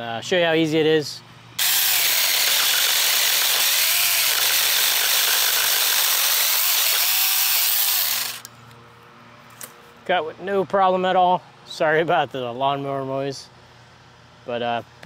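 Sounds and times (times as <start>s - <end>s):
cordless chainsaw cutting branch: 1.6s - 8.5s.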